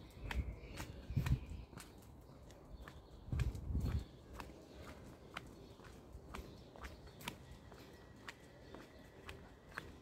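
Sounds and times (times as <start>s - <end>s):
footsteps on pavement: 0.0s - 10.0s.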